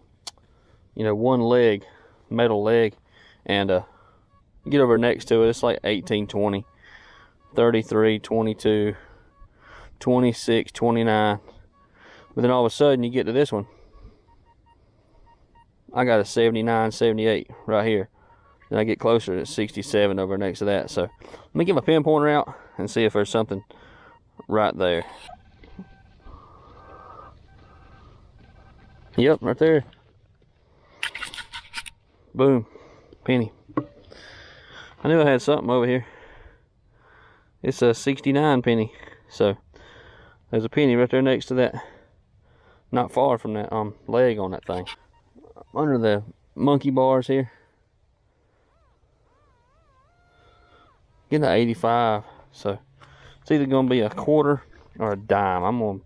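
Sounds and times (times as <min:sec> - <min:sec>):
metal detector alert tone: 0:04.6 - 0:06.8, 0:07.4 - 0:09.4, 0:11.8 - 0:26.4, 0:44.5 - 0:47.0, 0:55.0 - 0:56.0
metal detector wavering tone: 0:04.6 - 0:06.8, 0:18.2 - 0:29.5, 0:44.5 - 0:46.8, 0:48.7 - 0:52.4.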